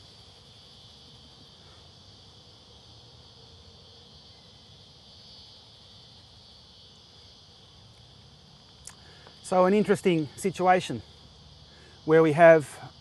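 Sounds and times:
high-pitched insect chorus: 0:00.0 - 0:13.0.

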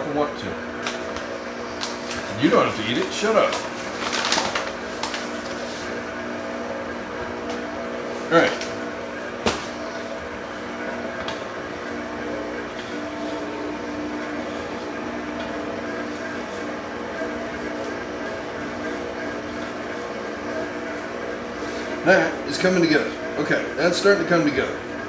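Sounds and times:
stand mixer motor hum: 0:00.0 - 0:25.0.

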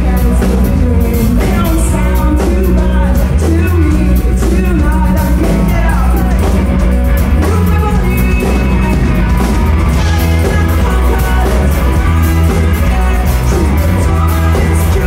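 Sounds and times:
woman singing: 0:00.0 - 0:06.6, 0:10.0 - 0:15.0
rock band playing live: 0:00.0 - 0:15.0.

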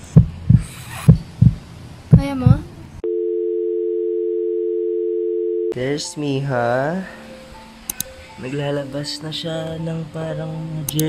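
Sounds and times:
telephone dial tone: 0:03.0 - 0:05.8.

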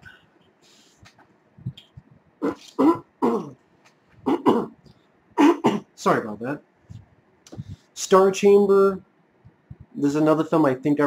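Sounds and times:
man coughing harshly: 0:02.4 - 0:03.6, 0:04.2 - 0:04.8, 0:05.4 - 0:05.9.

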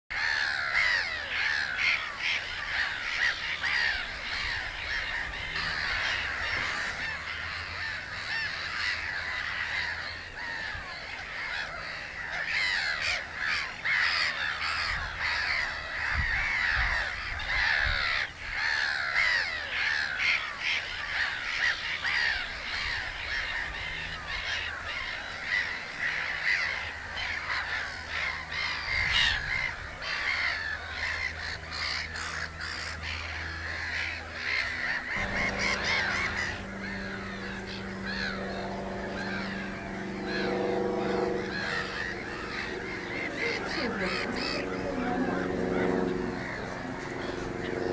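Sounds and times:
gulls calling: 0:00.1 - 0:47.9.

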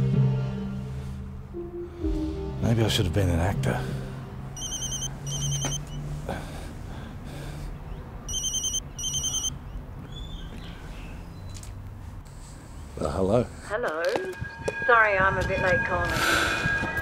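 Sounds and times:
mobile phone ringing: 0:04.6 - 0:06.0, 0:08.3 - 0:09.6.

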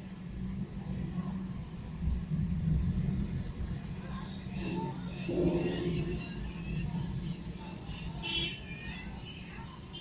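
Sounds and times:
vehicle engine rumbling: 0:00.0 - 0:09.9.

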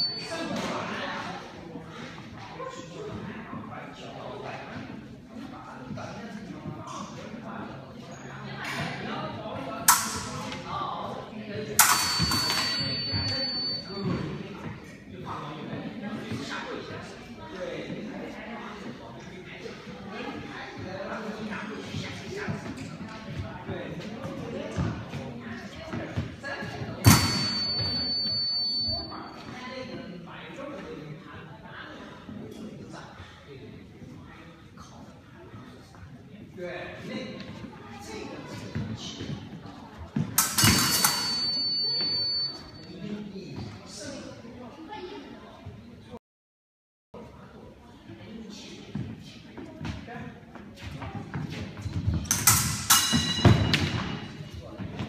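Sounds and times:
metallic ring of blades: 0:11.8 - 0:13.6, 0:40.4 - 0:42.4, 0:52.3 - 0:54.1.

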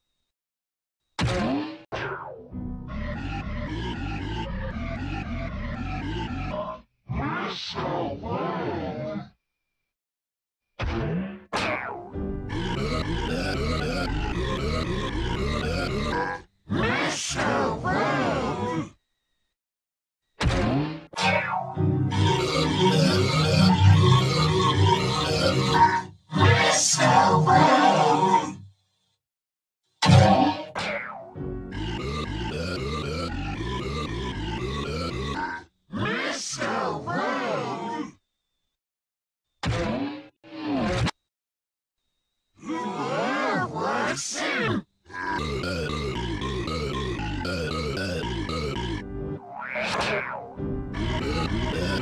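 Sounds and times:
deep wavering voice-like cry: 0:02.9 - 0:06.8, 0:12.5 - 0:18.9, 0:22.1 - 0:28.6, 0:31.7 - 0:35.6, 0:45.1 - 0:52.0
distorted cartoon soundtrack: 0:02.9 - 0:06.8, 0:12.5 - 0:16.4, 0:20.5 - 0:28.6, 0:30.0 - 0:31.1, 0:31.7 - 0:35.6, 0:45.1 - 0:52.0
cartoon music with stepped melody: 0:21.3 - 0:24.1
deep dense music: 0:45.6 - 0:49.4, 0:50.6 - 0:52.0.

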